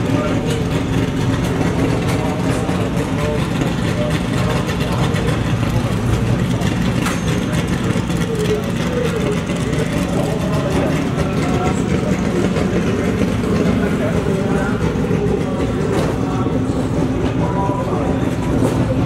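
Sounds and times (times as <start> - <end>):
distant voices: 0.0 - 19.0
steady engine noise: 0.0 - 19.0.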